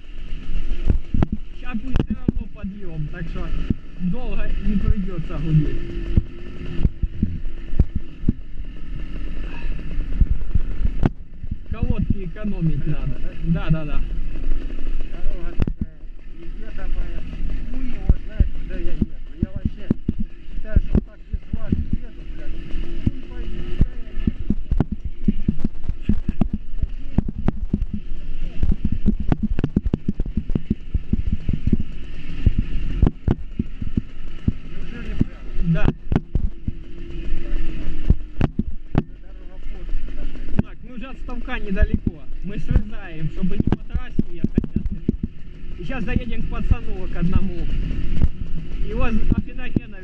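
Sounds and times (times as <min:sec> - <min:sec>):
small motorcycle engine hum: 0:00.0 - 0:50.0.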